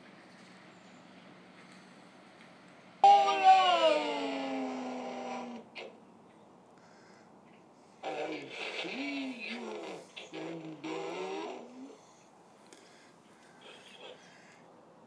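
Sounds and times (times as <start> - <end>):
robotic voice speaking: 8.0 - 12.0.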